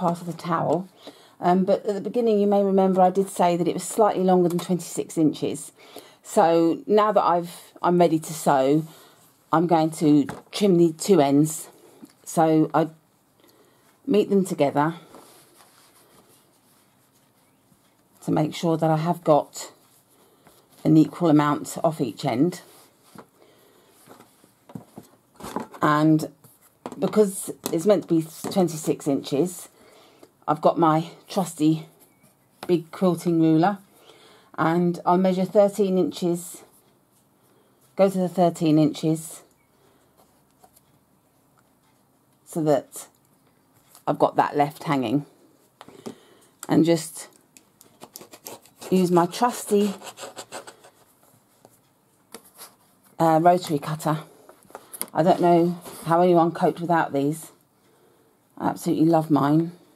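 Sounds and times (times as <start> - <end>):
woman speaking: 0.0 - 13.0, 14.0 - 15.2, 18.2 - 19.8, 20.8 - 22.8, 25.8 - 26.4, 27.0 - 29.8, 30.4 - 32.0, 32.6 - 33.9, 34.6 - 36.8, 38.0 - 39.5, 42.5 - 43.2, 44.0 - 45.4, 46.6 - 47.4, 48.8 - 50.2, 53.2 - 54.4, 55.1 - 57.6, 58.6 - 59.9.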